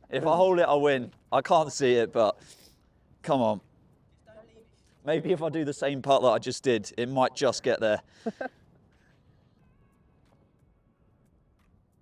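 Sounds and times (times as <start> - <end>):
man breathing: 2.4 - 2.9.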